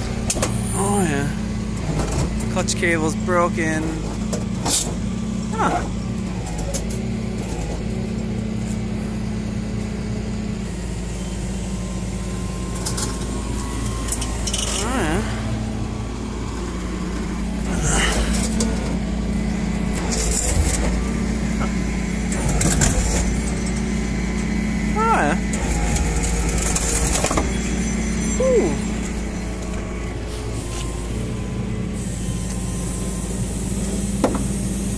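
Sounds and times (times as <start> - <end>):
truck engine humming: 0.0 - 34.9.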